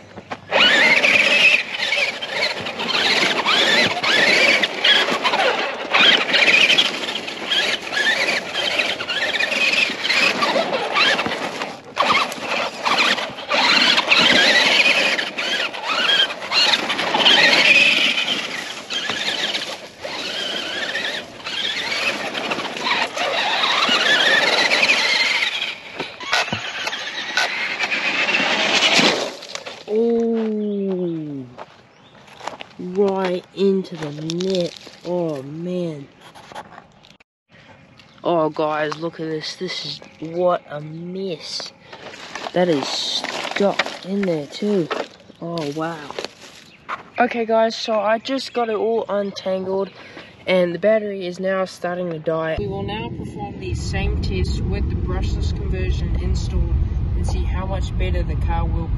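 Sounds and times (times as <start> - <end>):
toy car electric motor whining: 0.5 - 30.1.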